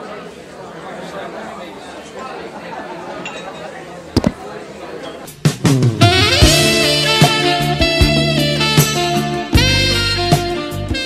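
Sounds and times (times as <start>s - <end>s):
murmur of many voices: 0.0s - 5.6s.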